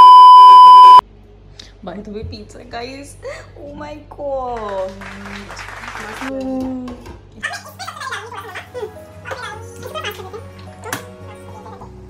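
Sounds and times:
high steady test tone beep: 0.0s - 1.0s.

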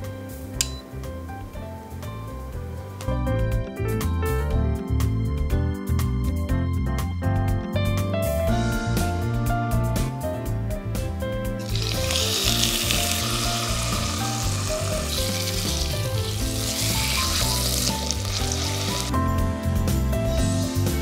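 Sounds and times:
background music: 0.0s - 21.0s
meat sizzling in oil: 11.6s - 21.0s.

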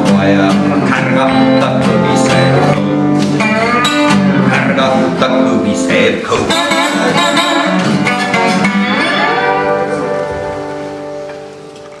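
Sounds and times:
acoustic guitar and zither chord: 6.4s - 11.7s.

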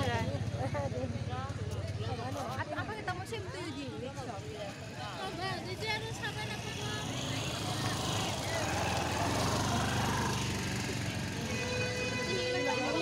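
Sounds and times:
people's voices: 0.0s - 13.0s
motor hum with road noise: 4.4s - 13.0s.

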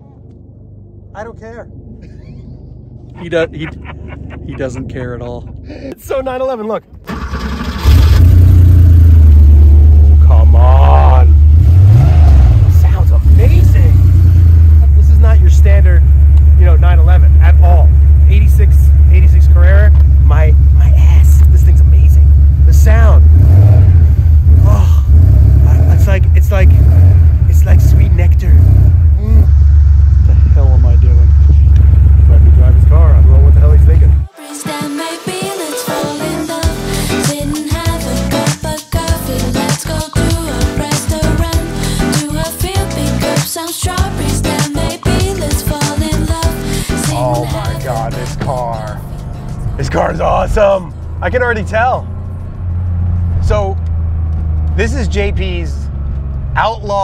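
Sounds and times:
car engine droning: 0.0s - 34.3s, 46.2s - 57.0s
indistinct voices: 10.1s - 23.2s, 24.5s - 26.9s, 29.2s - 29.6s, 30.2s - 52.4s.

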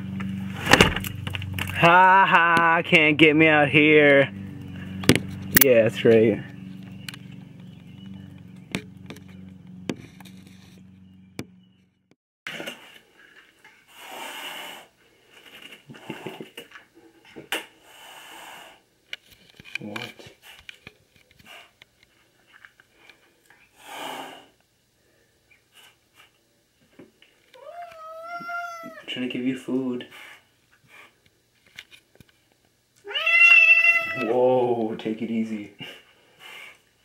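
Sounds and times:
cat hissing: 13.9s - 14.9s, 17.8s - 18.8s, 23.8s - 24.6s, 27.6s - 29.1s, 33.0s - 34.3s
cat yowling: 27.6s - 29.1s, 33.0s - 34.4s.

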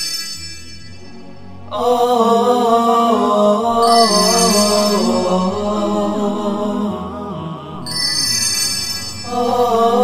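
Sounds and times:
bright high music layer: 0.0s - 10.0s
chanted vocal music: 0.6s - 10.0s.

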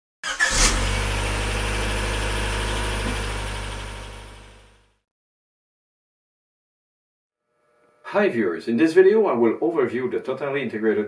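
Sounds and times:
car engine starting and idling: 0.2s - 4.9s.

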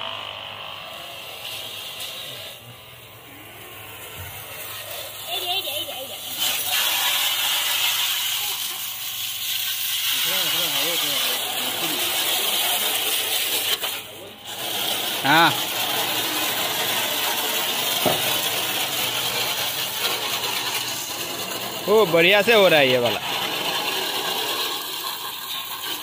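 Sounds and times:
pressure washer spraying car: 0.0s - 26.0s.

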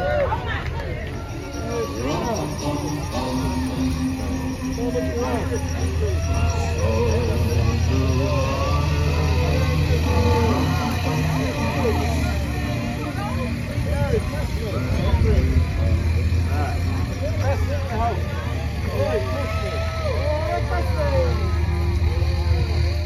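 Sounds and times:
crowd chatter: 0.0s - 23.0s
truck engine humming: 0.0s - 23.0s.

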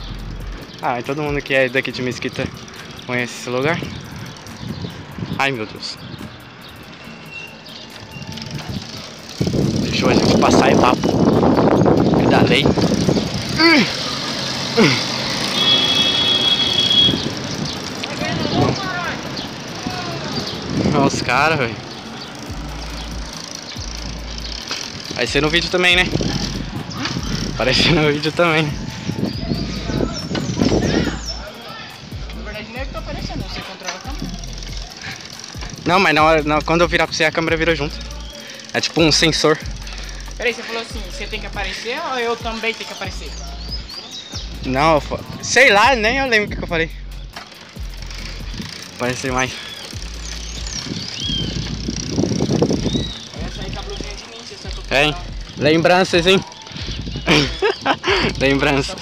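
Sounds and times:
tyres rolling on asphalt: 0.0s - 59.0s
wind on microphone: 3.8s - 6.8s, 8.0s - 13.6s, 16.7s - 21.9s, 22.5s - 31.4s, 48.2s - 48.8s, 50.0s - 59.0s.

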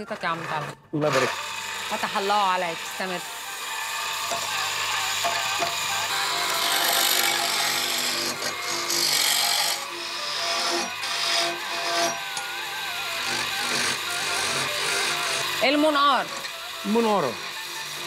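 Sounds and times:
wood lathe turning: 0.0s - 18.0s
chisel scraping wood: 3.7s - 15.6s.

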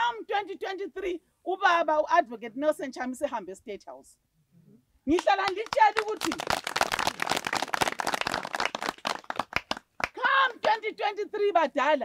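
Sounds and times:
people clapping: 5.1s - 10.8s.

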